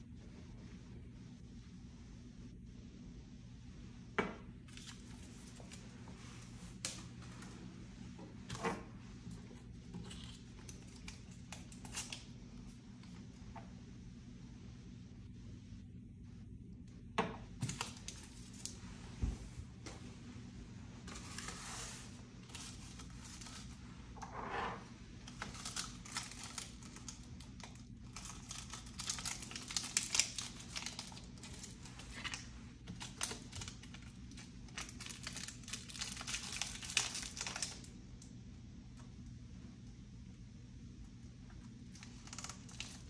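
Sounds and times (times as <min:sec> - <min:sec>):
packaging clicking and crinkling: 0:25.2 - 0:37.9, 0:41.9 - 0:43.0.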